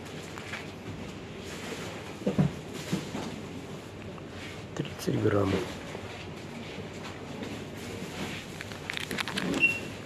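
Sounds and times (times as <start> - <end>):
faint shop background noise: 0.0 - 10.0
plastic wrapper crinkling: 8.4 - 10.0.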